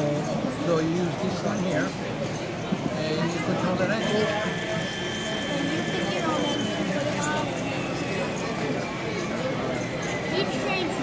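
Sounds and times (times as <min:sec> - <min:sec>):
people talking in a hall: 0:00.0 - 0:11.0.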